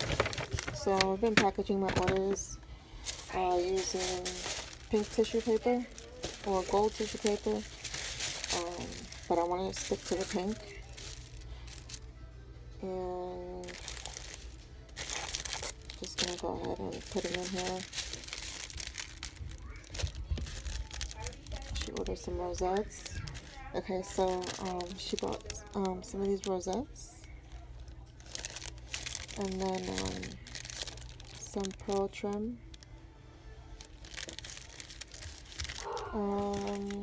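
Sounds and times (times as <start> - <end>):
paper and plastic crinkling: 0.0 - 12.1, 13.3 - 32.9, 33.8 - 37.0.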